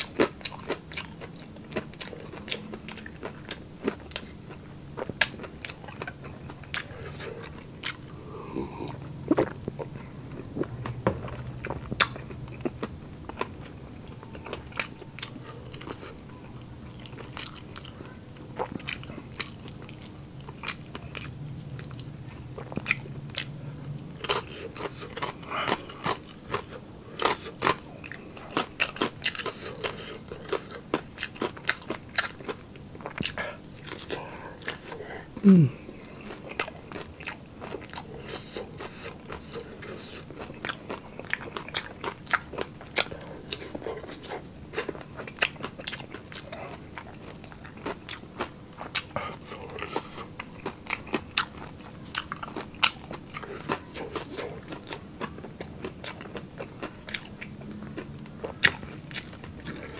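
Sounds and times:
chewing crispy food: 0.0s - 59.9s.

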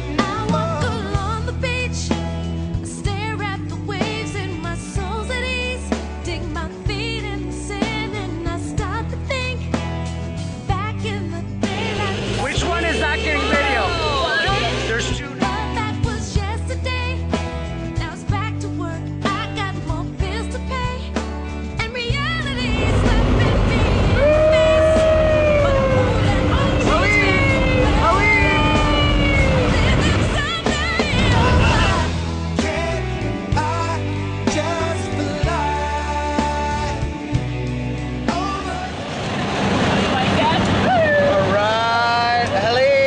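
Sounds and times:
plane engine drone: 11.6s - 15.4s, 22.4s - 32.2s, 38.0s - 43.0s
people whooping and cheering: 12.4s - 15.0s, 23.9s - 30.4s, 40.8s - 43.0s
plane engine and wind noise: 38.9s - 41.6s.

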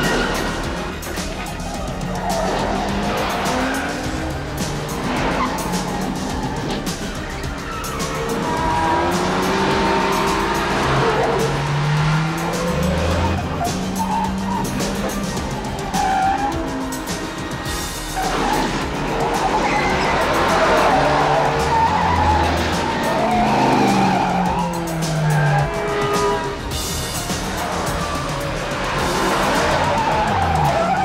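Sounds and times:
car engines revving: 0.0s - 31.0s
film score music: 0.0s - 31.0s
tyres squealing: 0.0s - 31.0s.

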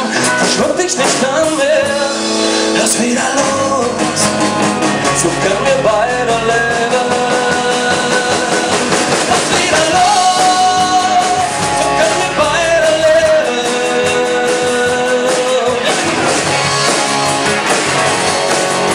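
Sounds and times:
bending lead melody: 0.0s - 18.9s
rock band playing: 0.0s - 18.9s.

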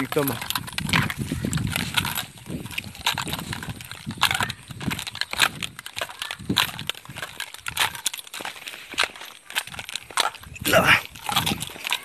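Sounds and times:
footsteps on muddy dirt path: 0.0s - 12.0s.

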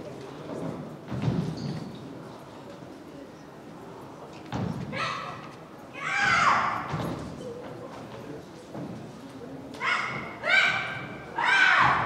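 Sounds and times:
sharp shouted yells: 6.0s - 6.9s, 9.8s - 12.0s.

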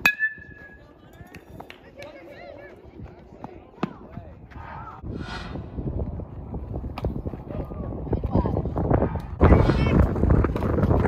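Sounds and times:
metal bat hitting ball ping: 0.0s - 0.8s.

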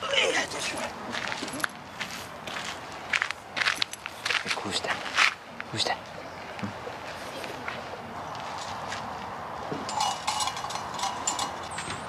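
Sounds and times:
light metallic clinks and taps: 9.7s - 12.0s.

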